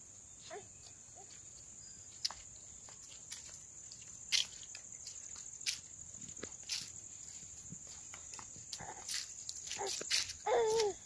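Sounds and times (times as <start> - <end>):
bare feet scuffing on sand: 1.2 - 11.0
child's vocal sound: 8.7 - 11.0.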